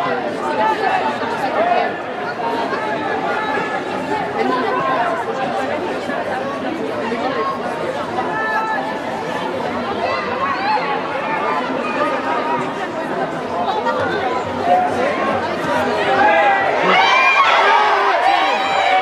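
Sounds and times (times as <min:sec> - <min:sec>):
crowd chattering: 0:00.0 - 0:19.0.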